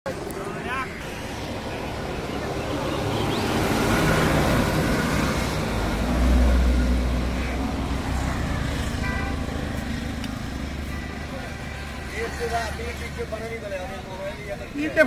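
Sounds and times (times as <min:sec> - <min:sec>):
vehicle passing by: 0:01.0 - 0:15.0.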